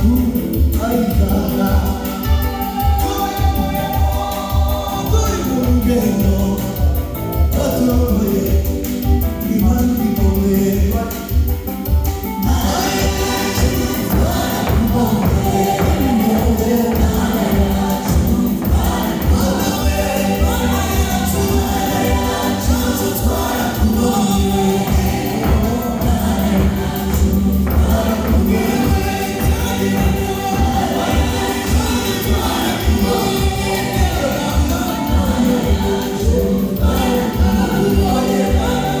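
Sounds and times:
choir singing gospel: 0.0 - 39.0
steady beat: 0.0 - 39.0.

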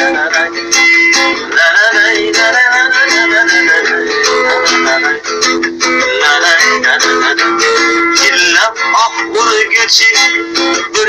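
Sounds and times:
acoustic guitar strumming: 0.0 - 11.0
man singing: 0.0 - 11.0.

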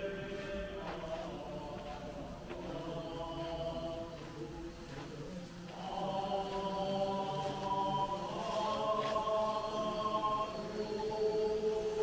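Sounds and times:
chanting in long held tones: 0.0 - 12.0.

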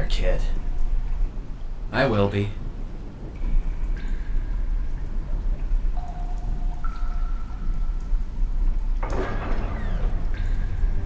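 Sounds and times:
deep low rumble: 0.0 - 11.0
rain-like patter: 0.0 - 11.0.

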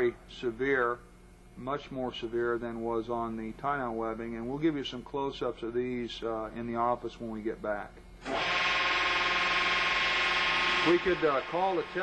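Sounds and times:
hydraulic pump drone: 8.2 - 12.0.

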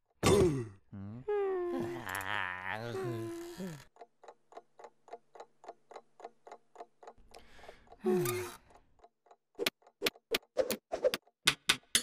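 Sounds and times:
cartoon yawn: 0.9 - 3.8
clock ticking: 3.8 - 10.5.

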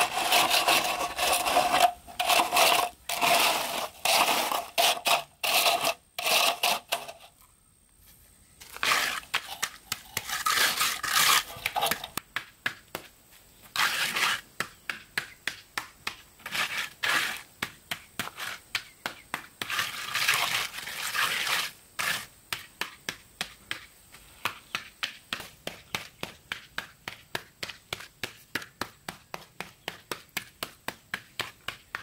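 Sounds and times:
trowel strokes on wet concrete: 0.0 - 7.3, 8.6 - 12.2, 13.6 - 26.7
screed board scraping concrete: 0.0 - 32.0.

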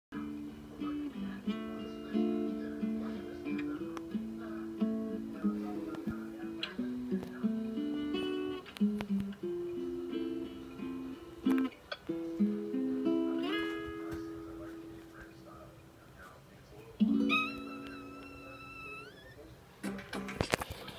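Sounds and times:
guitar playing slow tune: 0.1 - 20.5.

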